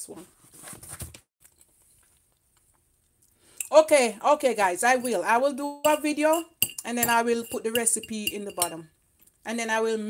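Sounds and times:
fork knocking on ceramic plate: 5.9s - 8.8s.

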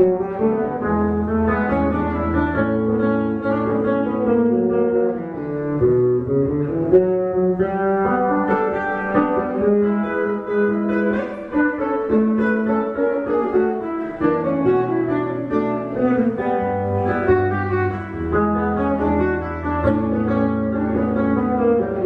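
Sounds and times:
low bass notes: 0.0s - 11.3s
electric guitar melody: 0.0s - 22.0s.

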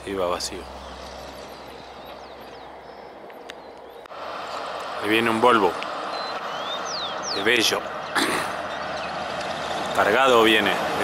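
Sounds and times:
truck diesel engine running: 0.0s - 11.0s.

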